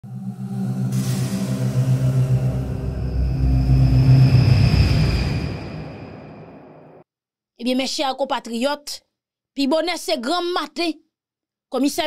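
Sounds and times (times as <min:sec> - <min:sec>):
airy whoosh: 0:00.0 - 0:07.0
deep sustained music chord: 0:00.0 - 0:07.0.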